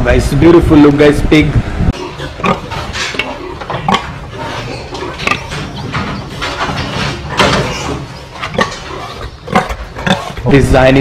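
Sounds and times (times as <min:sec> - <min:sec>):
steady mechanical hum: 0:00.0 - 0:11.0
metal knocks and clanks: 0:02.4 - 0:10.2.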